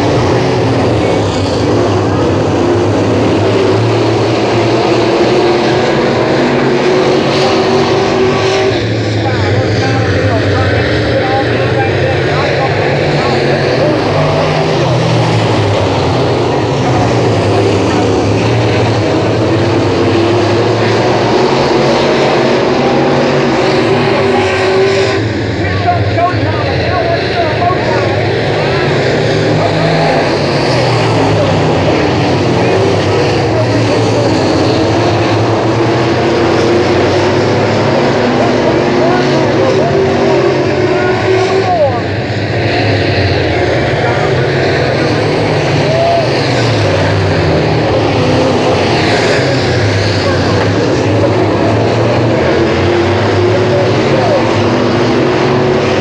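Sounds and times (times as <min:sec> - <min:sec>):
race car engines racing: 0:00.0 - 0:56.0.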